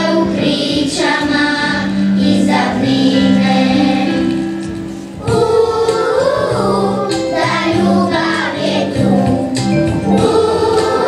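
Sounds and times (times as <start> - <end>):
children singing together: 0.0 - 11.0
instrumental accompaniment of low notes: 0.0 - 11.0.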